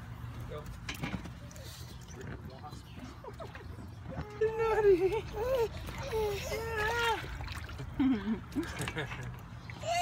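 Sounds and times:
toddlers babbling: 4.2s - 7.4s.

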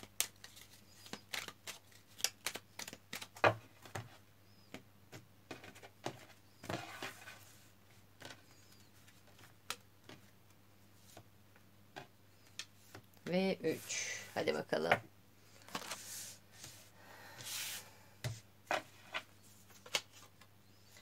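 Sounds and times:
cards shuffling with snaps: 0.0s - 4.0s
card rustling slide: 15.6s - 17.9s.

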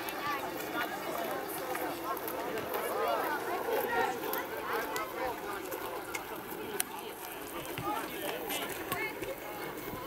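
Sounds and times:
voices shouting and calling out: 0.0s - 10.0s.

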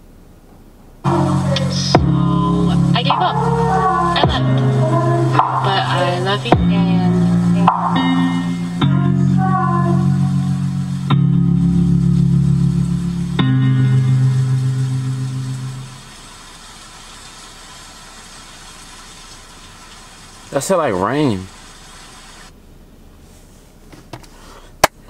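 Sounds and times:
car interior hum: 0.0s - 25.0s
song with low chords: 1.0s - 16.1s
person singing: 1.1s - 11.3s.

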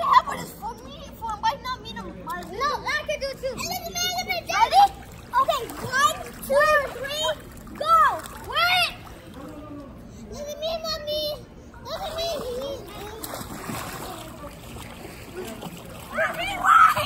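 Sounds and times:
children calling out: 16.0s - 17.0s.

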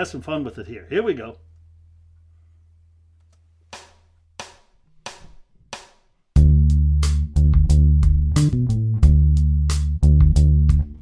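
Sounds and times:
drum beat: 3.7s - 10.9s
electric bass playing: 6.4s - 11.0s.

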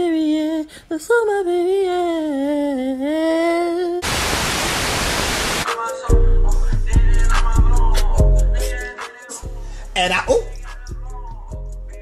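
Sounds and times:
television static hiss: 4.0s - 5.7s.

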